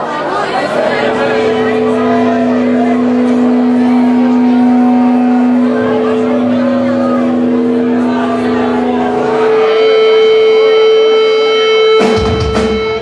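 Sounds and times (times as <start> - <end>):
amplified band droning notes: 0.0 - 13.0
crowd chatter: 0.0 - 13.0.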